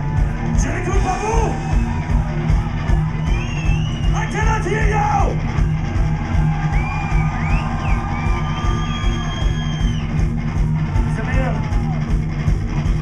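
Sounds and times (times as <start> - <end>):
live rock band playing: 0.0 - 13.0.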